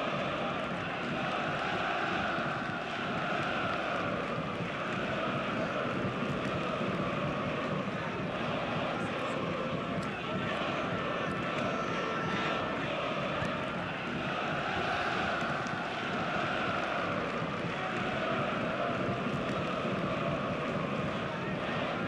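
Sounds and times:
crowd noise: 0.0s - 22.0s
players' voices: 0.0s - 22.0s.

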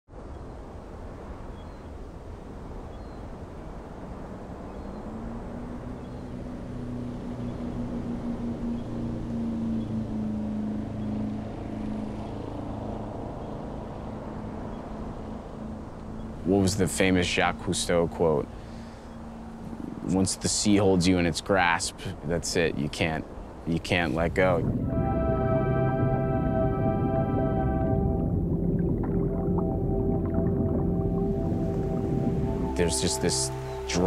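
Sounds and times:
rushing water wash: 0.6s - 34.0s
motorboat engine humming: 4.3s - 20.3s, 23.5s - 34.0s.

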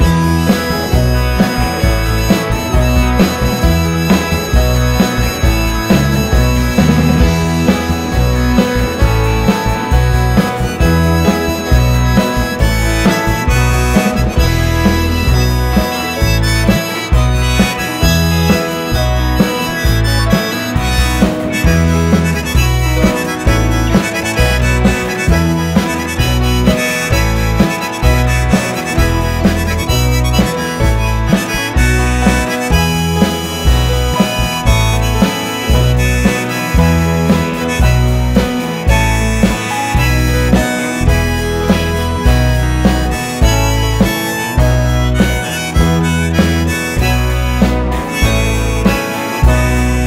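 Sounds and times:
harmonica playing: 0.0s - 50.0s
live band playing: 0.0s - 50.0s.

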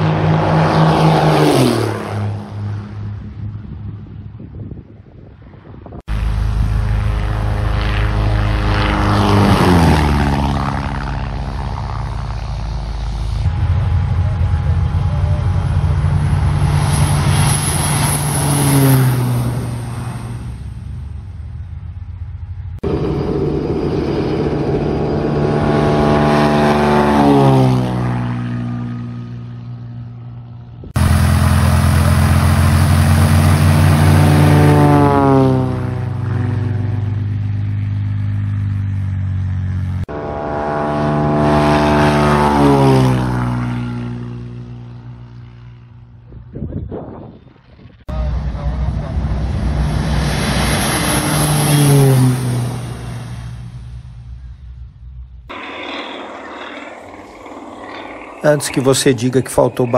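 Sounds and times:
propeller airplane passing low: 0.0s - 59.9s.

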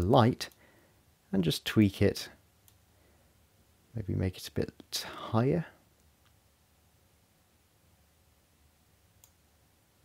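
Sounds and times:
computer mouse clicks: 9.2s - 9.4s.

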